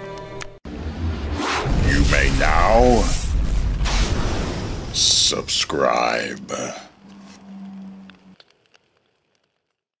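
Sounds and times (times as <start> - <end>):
faint crackles: 6.1 - 10.0.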